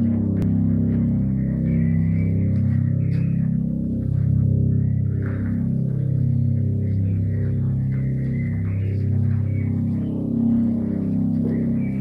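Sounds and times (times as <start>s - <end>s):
deep droning tones: 0.0s - 12.0s.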